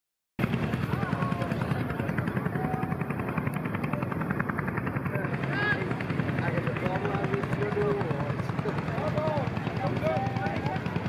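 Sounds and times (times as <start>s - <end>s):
tractor engine running: 0.4s - 11.0s
voices murmuring: 0.4s - 11.0s.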